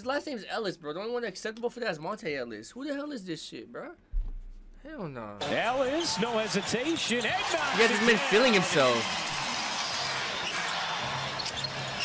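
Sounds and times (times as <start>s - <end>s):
arena crowd noise: 5.4s - 12.0s.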